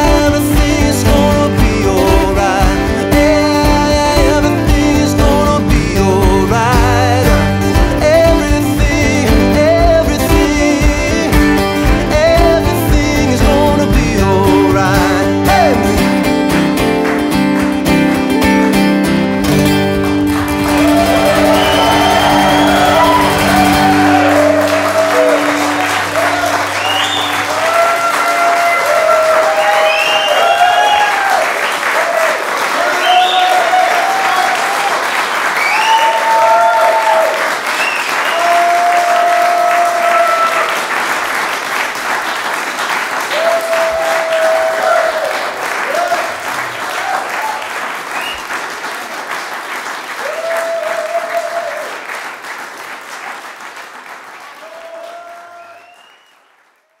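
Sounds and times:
audience applauding: 0.0 - 57.0
cheers and whoops: 20.6 - 40.9, 43.3 - 48.4, 50.2 - 52.1, 54.6 - 56.4.

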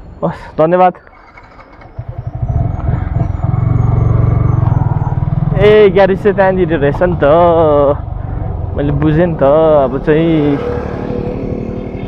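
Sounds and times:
motorcycle engine accelerating: 1.1 - 12.0.

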